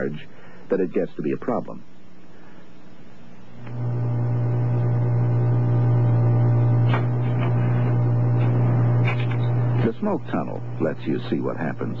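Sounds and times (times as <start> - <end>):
low machine-like hum: 3.2 - 12.0.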